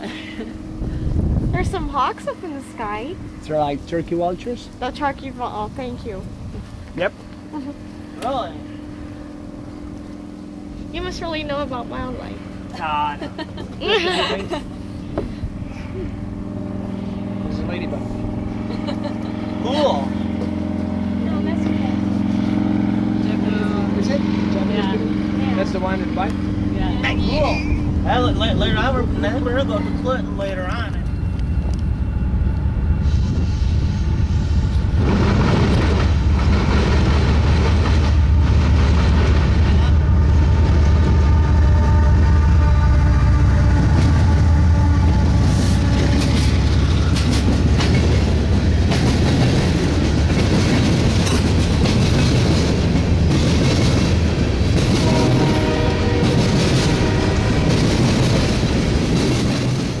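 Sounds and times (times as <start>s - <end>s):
diesel locomotive engine rumbling: 0.0s - 60.0s
train wheels clattering on rails: 34.6s - 41.3s, 43.8s - 60.0s.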